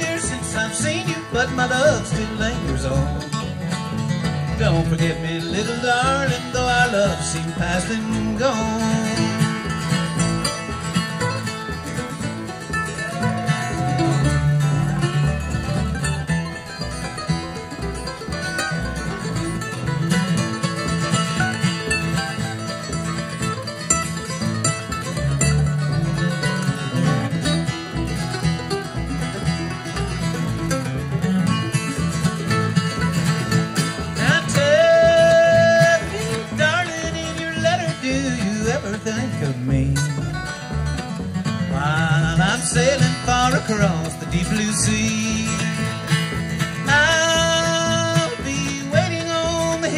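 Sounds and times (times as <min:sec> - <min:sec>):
mandolin picking lead: 0:00.0 - 0:49.9
strummed acoustic guitar: 0:00.0 - 0:49.9
upright bass: 0:00.0 - 0:49.9.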